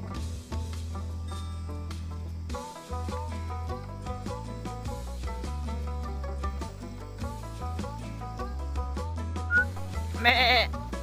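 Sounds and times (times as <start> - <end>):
background music: 0.0 - 11.0
goat bleating: 9.9 - 10.8.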